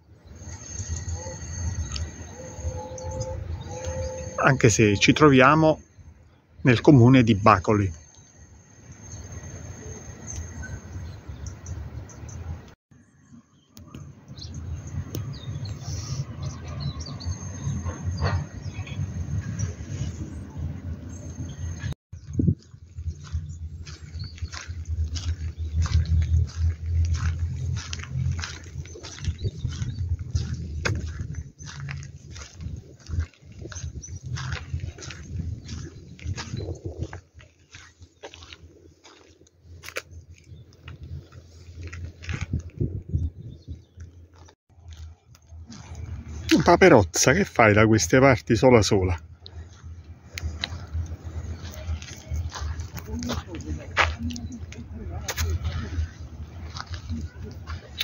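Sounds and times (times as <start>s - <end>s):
wind rumbling on microphone: 13.8s - 46.5s, 49.2s - 58.0s
footsteps crunching on gravel: 22.1s - 43.2s, 43.9s - 47.6s, 49.5s - 58.0s.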